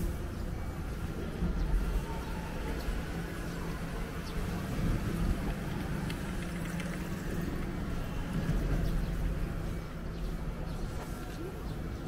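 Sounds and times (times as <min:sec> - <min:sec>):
vehicle engine humming: 0:00.0 - 0:11.8.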